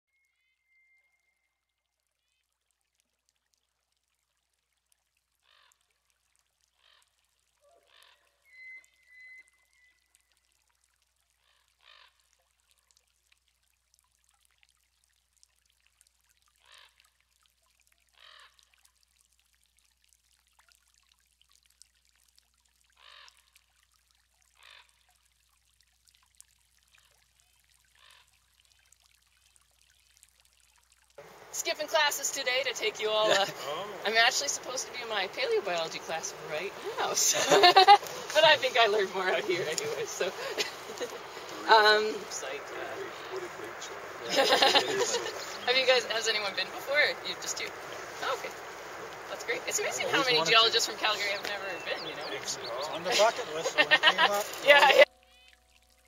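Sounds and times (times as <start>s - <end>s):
distant harsh bird calls: 7.6s - 10.0s, 31.2s - 54.7s.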